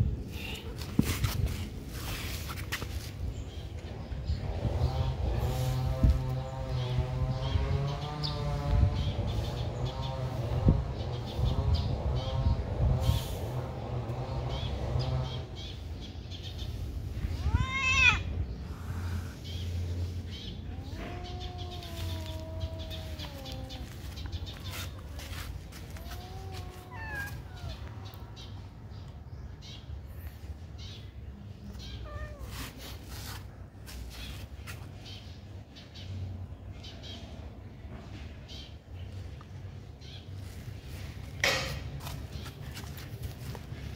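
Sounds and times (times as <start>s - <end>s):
kittens meowing: 17.3s - 19.3s, 20.6s - 27.9s.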